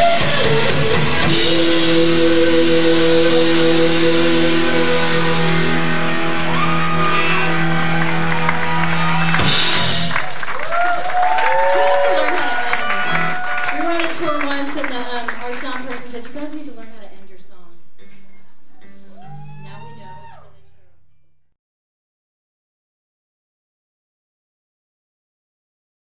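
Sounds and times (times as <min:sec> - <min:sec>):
guitars ringing out: 0:00.0 - 0:10.2, 0:12.3 - 0:16.1
live rock band: 0:00.0 - 0:16.2.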